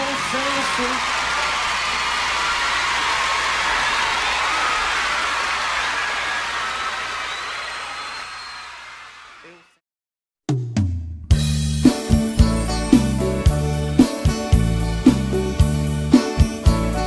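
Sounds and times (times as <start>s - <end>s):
audience applauding and cheering: 0.0s - 9.8s
voices or whistles: 7.2s - 8.8s.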